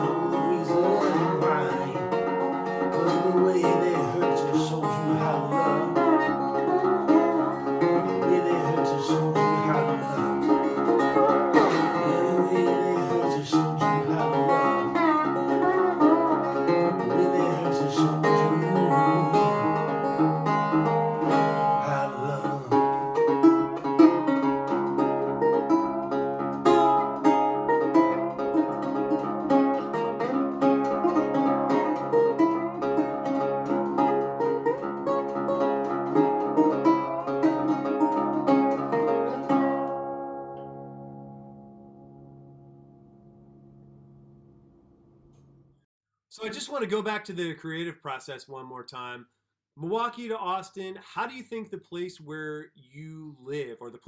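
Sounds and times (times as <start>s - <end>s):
resonator guitar slide blues: 0.0s - 42.3s.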